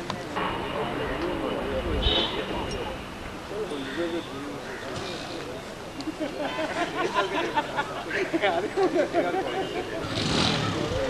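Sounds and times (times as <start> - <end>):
men chatting: 0.0 - 11.0
motorcycle engine passing: 10.0 - 11.0.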